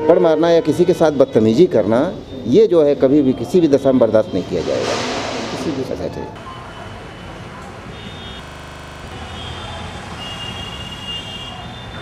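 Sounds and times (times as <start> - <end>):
steady low rumble: 4.6 - 6.2.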